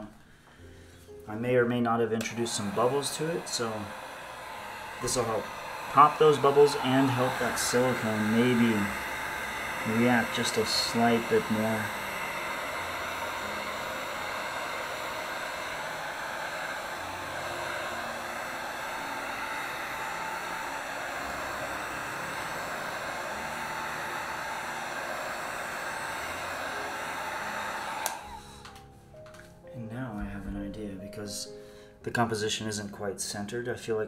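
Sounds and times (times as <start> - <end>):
heat gun blowing: 2.2 - 28.9
heat gun switch click: 28.0 - 28.8.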